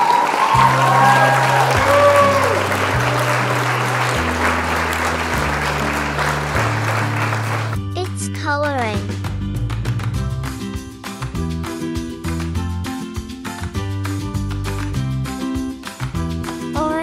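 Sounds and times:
high whoops: 0.0s - 3.9s
crowd cheering and applauding: 0.0s - 7.8s
upbeat music with walking bass: 0.6s - 17.0s.

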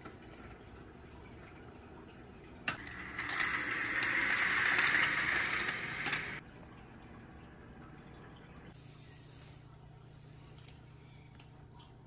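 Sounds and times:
window blinds clattering and sliding: 2.8s - 6.4s.

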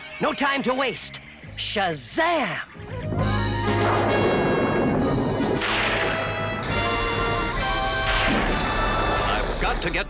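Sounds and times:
sustained music tones: 2.8s - 10.0s
sharp thunder-like crashes: 3.7s - 6.9s, 8.0s - 9.7s.

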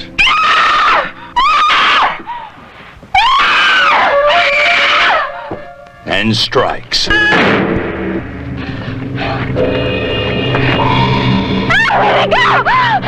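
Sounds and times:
high-pitched screams: 0.2s - 2.3s, 3.2s - 5.5s, 10.9s - 13.0s.

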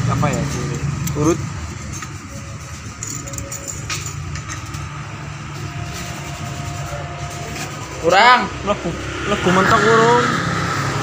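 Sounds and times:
engine idling: 0.0s - 9.5s.

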